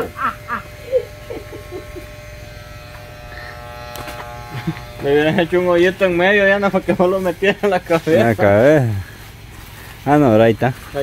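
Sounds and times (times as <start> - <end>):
electric hair clippers buzzing: 0.0 - 8.7.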